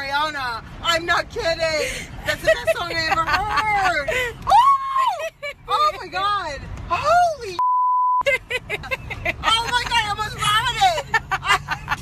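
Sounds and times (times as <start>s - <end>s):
censor bleep: 7.6s - 8.2s.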